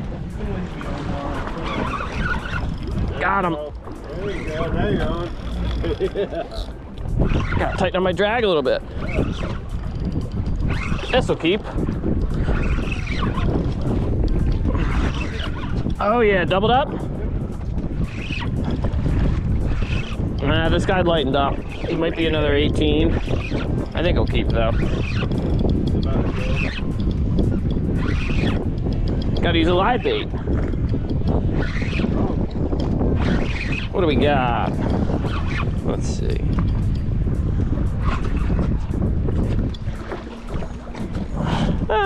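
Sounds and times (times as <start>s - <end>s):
sea washing around boat: 0.0s - 42.0s
wind buffeting microphone: 0.0s - 42.0s.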